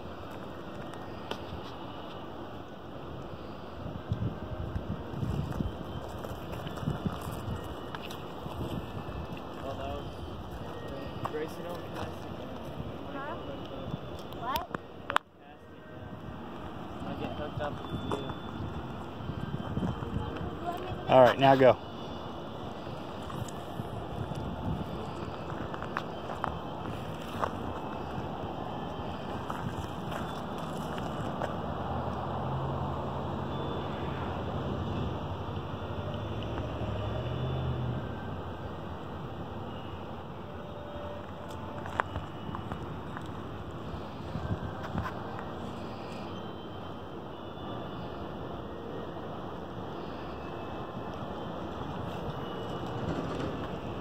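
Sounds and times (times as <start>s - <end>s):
wind on microphone: 3.8s - 9.5s, 17.6s - 21.1s, 23.2s - 25.9s, 44.2s - 45.3s.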